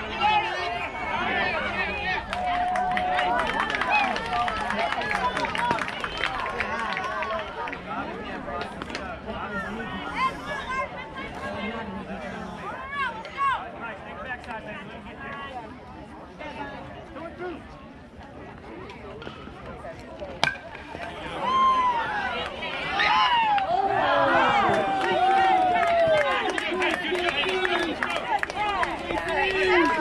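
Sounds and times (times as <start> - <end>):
crowd of voices chattering: 0.0 - 30.0.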